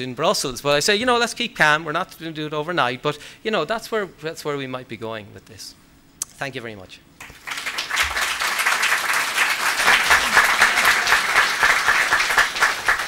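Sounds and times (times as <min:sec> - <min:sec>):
audience applauding: 0:07.2 - 0:13.0.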